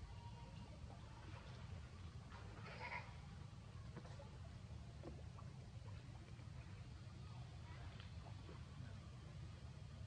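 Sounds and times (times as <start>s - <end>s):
faint low rumble: 0.0s - 10.0s.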